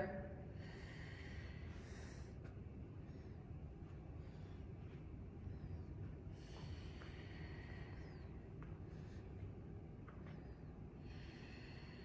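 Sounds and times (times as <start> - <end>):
low room rumble: 0.0 - 12.0
person breathing: 0.4 - 12.0.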